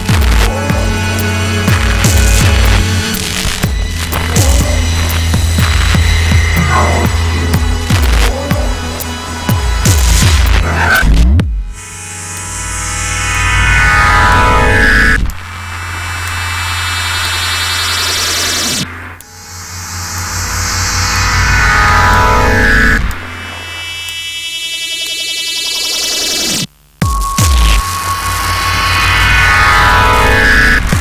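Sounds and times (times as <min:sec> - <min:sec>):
synthesizer phrases: 0:00.0 - 0:11.2
low bass drone: 0:00.0 - 0:24.3, 0:27.0 - 0:31.0
deep bass thumps: 0:01.7 - 0:08.9.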